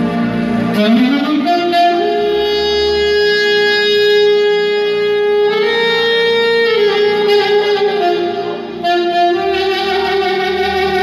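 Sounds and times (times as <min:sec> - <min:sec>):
low sustained accompaniment: 0:00.0 - 0:11.0
saxophone melody: 0:00.0 - 0:11.0.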